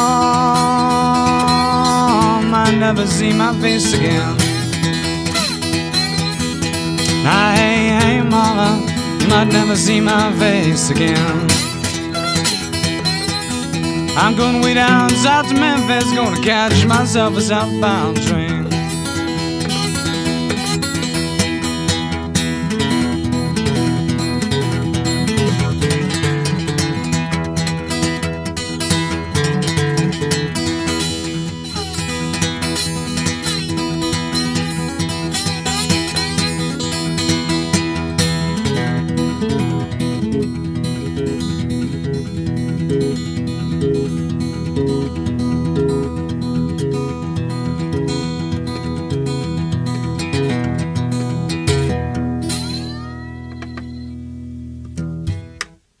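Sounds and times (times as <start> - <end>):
acoustic guitar blues playing: 0.0 - 55.9.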